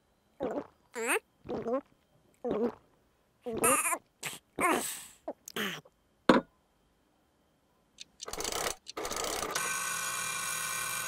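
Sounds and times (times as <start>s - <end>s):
cartoon voice squeaks: 3.5s - 4.0s.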